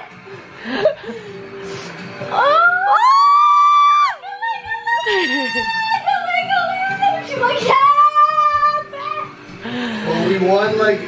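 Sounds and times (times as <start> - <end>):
women screaming with excitement: 2.4 - 6.1.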